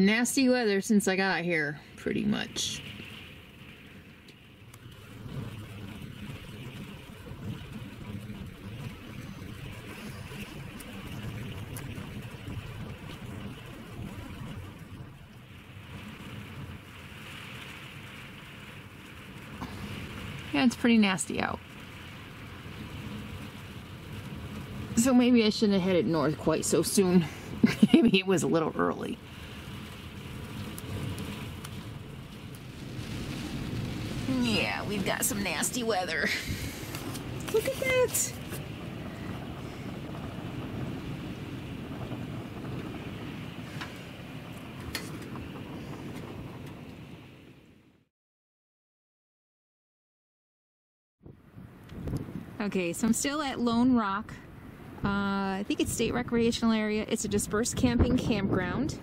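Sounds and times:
strong wind buffeting microphone: 0:00.1 - 0:48.0, 0:51.2 - 0:59.0.

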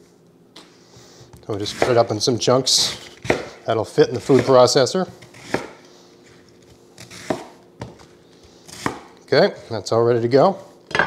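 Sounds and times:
knife cutting cabbage on board: 0:01.5 - 0:02.1, 0:02.8 - 0:09.2.

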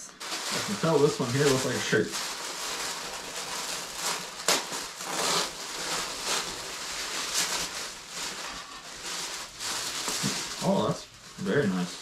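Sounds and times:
paper wrapping rustling: 0:00.0 - 0:12.0.

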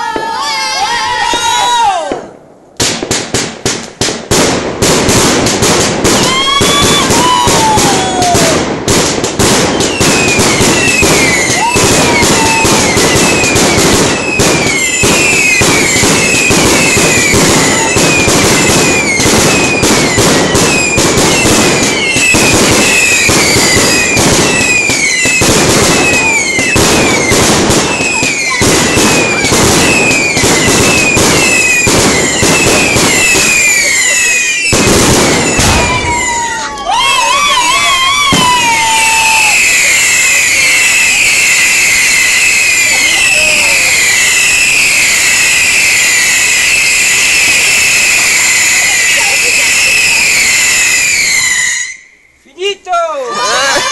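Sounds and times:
fireworks crackling bangs: 0:00.1 - 0:53.0
short falling whistles: 0:49.8 - 0:52.4.

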